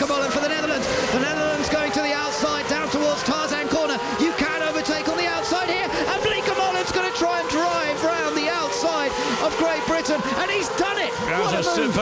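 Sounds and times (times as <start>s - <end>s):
race car engines at speed: 0.0s - 12.0s
voices: 0.0s - 12.0s.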